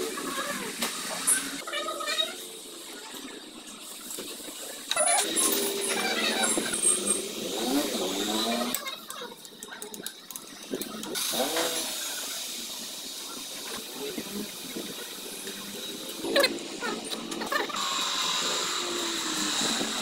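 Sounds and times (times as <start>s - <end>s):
engine running and revving: 4.8s - 8.8s, 10.6s - 20.0s.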